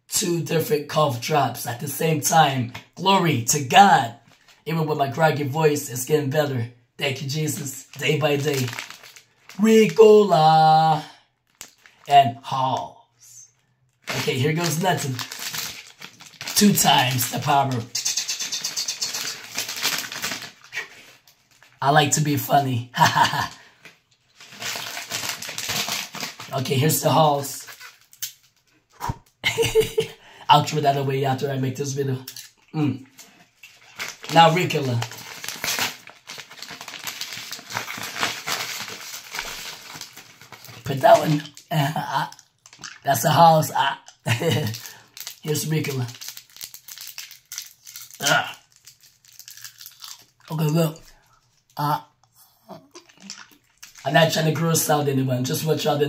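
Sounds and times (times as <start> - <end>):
wrappers crinkling: 4.2 - 4.6, 7.2 - 10.4, 11.4 - 12.1, 13.5 - 21.8, 23.0 - 29.7, 32.3 - 43.1, 44.1 - 51.8, 53.0 - 54.4.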